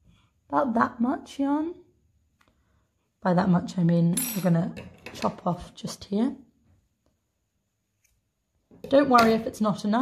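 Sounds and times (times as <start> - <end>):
woman speaking: 0.5 - 1.9, 3.2 - 6.5, 8.8 - 10.0.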